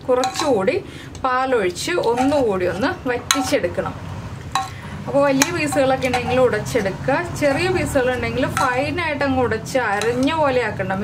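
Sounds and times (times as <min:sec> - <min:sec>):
woman speaking: 0:00.0 - 0:04.0, 0:05.0 - 0:11.0
spatula scraping metal pot: 0:00.1 - 0:00.8, 0:01.7 - 0:03.8, 0:04.5 - 0:10.7.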